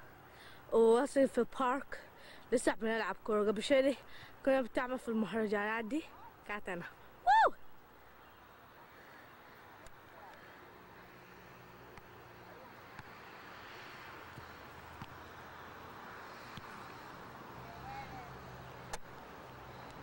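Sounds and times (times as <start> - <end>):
faint outdoor background hiss: 0.0 - 20.0
child shouting: 7.3 - 7.6.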